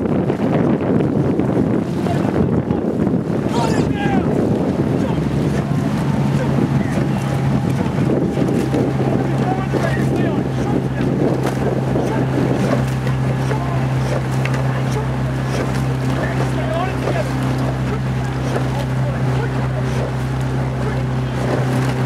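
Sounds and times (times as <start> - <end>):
motor boat engine hum: 0.0 - 22.0
rushing water: 0.0 - 22.0
wind on microphone: 0.0 - 22.0
oar blades splashing: 3.4 - 22.0.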